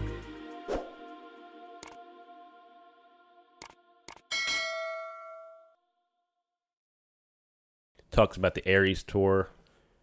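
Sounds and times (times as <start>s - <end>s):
background music: 0.0s - 4.8s
bright bell-like ding: 4.3s - 5.8s.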